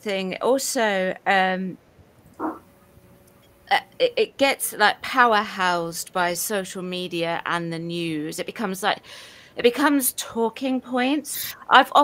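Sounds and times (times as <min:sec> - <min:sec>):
brief vocal sound: 0:02.4 - 0:02.6.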